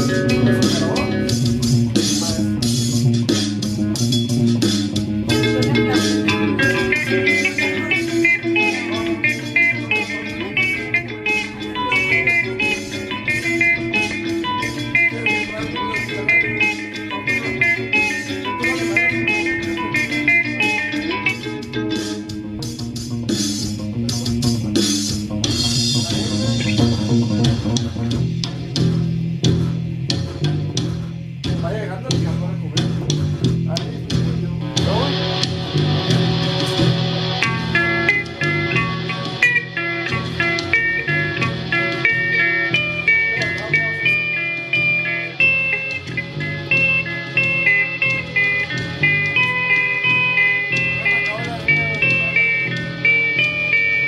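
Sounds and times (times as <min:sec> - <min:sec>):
electric guitar ringing notes: 0:00.0 - 0:29.6, 0:34.3 - 0:54.0
bass guitar figure: 0:00.0 - 0:54.0
programmed beat: 0:00.0 - 0:54.0.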